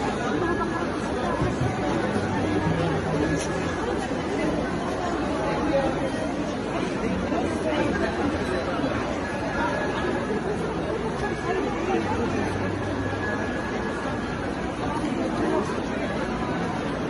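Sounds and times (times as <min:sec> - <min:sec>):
crowd chatter: 0:00.0 - 0:17.0.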